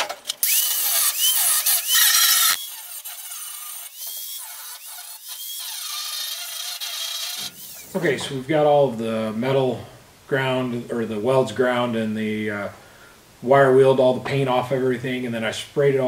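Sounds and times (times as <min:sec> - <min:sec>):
angle grinder grinding metal: 0:00.0 - 0:08.4.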